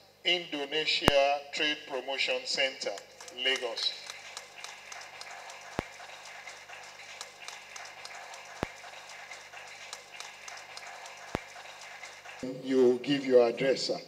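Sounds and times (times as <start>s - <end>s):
sharp clicks: 2.9s - 5.9s
audience applauding: 3.2s - 12.9s.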